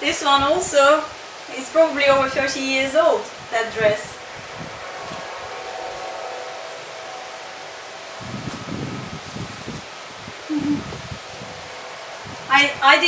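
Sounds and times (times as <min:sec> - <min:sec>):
wind rumbling on microphone: 0:00.0 - 0:13.0
faint steady tones: 0:01.2 - 0:13.0
short low sound: 0:10.4 - 0:11.1.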